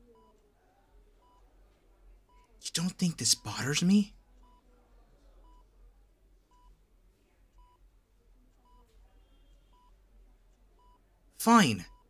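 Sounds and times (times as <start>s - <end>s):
patient monitor beeping: 0.0s - 0.4s, 1.2s - 1.5s, 2.2s - 4.7s, 5.4s - 5.7s, 6.4s - 6.8s, 7.5s - 7.9s, 8.5s - 10.0s, 10.7s - 12.0s.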